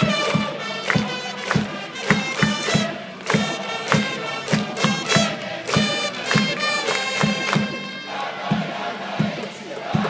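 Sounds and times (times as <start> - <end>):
cheering section trumpets: 0.0 - 10.0
crowd chanting: 0.0 - 10.0
steady drum beats: 0.0 - 10.0.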